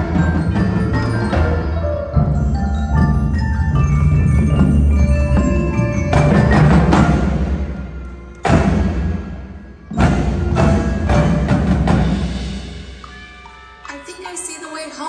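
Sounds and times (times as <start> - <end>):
full-ensemble percussion hits: 0.0 - 14.1
marimbas and mallet percussion: 0.0 - 14.6.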